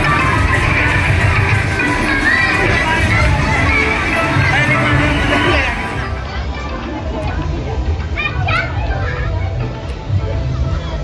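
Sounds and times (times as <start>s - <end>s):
children playing and shouting: 0.0s - 11.0s
crowd chatter: 0.0s - 11.0s.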